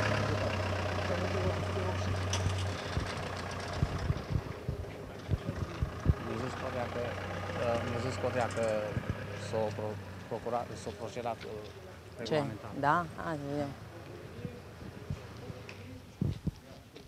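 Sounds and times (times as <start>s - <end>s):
truck engine humming: 0.0s - 16.1s.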